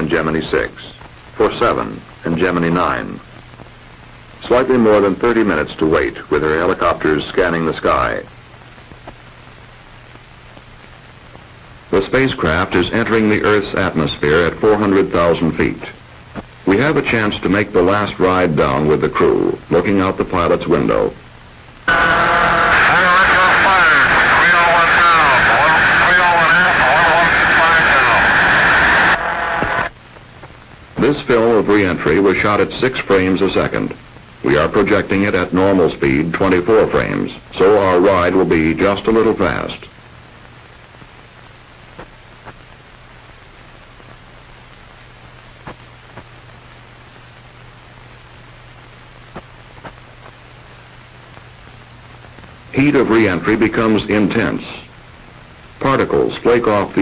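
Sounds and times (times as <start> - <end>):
radio hiss: 0.0 - 57.0
faint clicks and pops: 3.2 - 4.1, 8.4 - 11.9, 16.0 - 16.6, 29.6 - 31.1, 40.0 - 52.7
garbled radio voice: 21.9 - 29.9.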